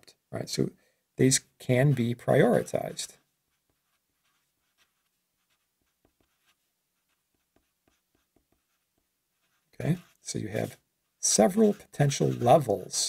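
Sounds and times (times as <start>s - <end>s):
marker writing on paper: 1.8s - 13.0s.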